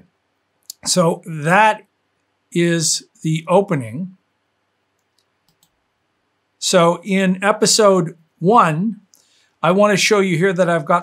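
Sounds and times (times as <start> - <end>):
faint computer mouse clicks: 4.9 - 5.8.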